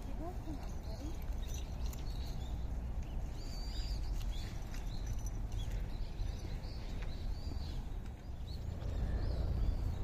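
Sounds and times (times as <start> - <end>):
small birds chirping: 0.0 - 10.0
low rumble: 6.0 - 10.0.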